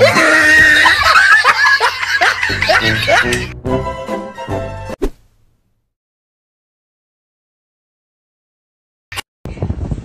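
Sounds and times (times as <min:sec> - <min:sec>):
laughter bursts: 0:00.0 - 0:03.5
background music: 0:00.0 - 0:05.0.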